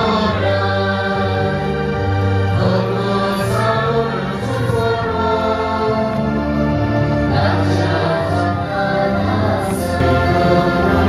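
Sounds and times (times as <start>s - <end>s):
choir singing church music: 0.0s - 11.0s.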